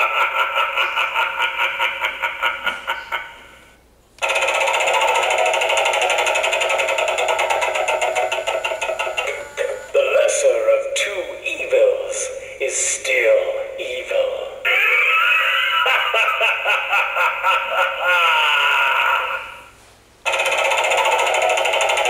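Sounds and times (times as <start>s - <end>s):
fast pulsing sound from small speaker: 4.2s - 10.4s, 20.3s - 22.0s.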